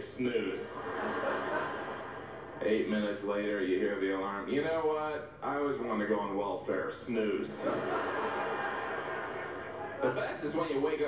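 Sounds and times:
audience laughing: 0:00.6 - 0:02.8, 0:07.4 - 0:10.4.

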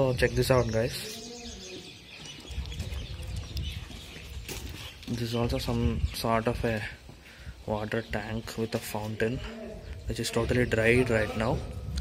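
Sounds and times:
birds calling faintly: 0:00.0 - 0:12.0.

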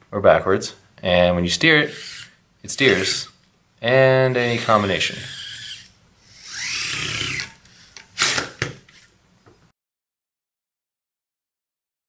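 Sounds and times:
loud rasping burst: 0:01.9 - 0:03.3, 0:04.4 - 0:08.5
small electric motors whining: 0:01.9 - 0:03.3, 0:04.4 - 0:09.1.

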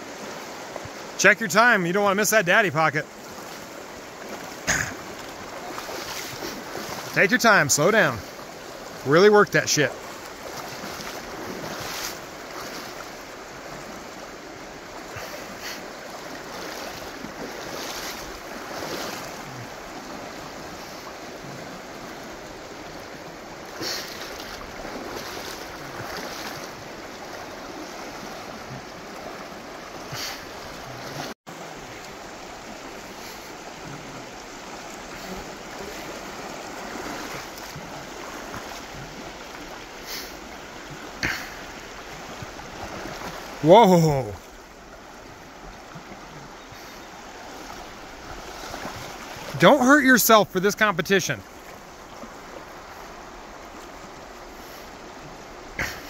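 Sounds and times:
shallow river rushing: 0:00.0 - 0:56.0
water splashes: 0:00.0 - 0:56.0.

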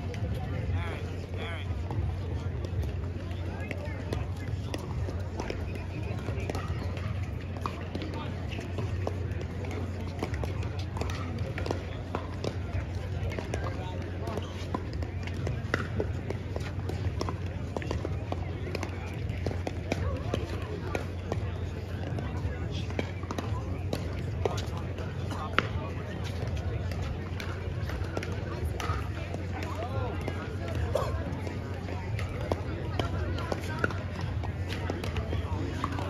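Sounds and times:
people chattering: 0:00.0 - 0:36.0.

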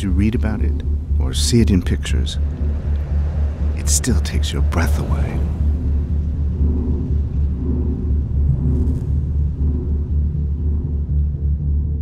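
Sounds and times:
deep low drone: 0:00.0 - 0:12.0
sustained tones: 0:00.0 - 0:12.0.

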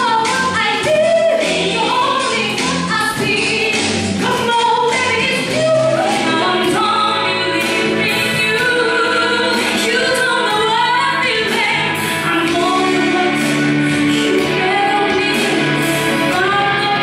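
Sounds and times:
woman singing into microphone: 0:00.0 - 0:17.0.

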